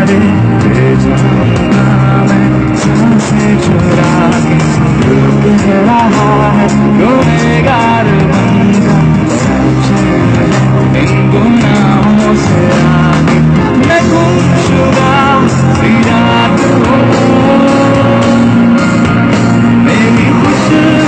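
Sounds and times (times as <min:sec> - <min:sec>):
live pop band: 0:00.0 - 0:21.0
person singing into microphone: 0:00.0 - 0:21.0.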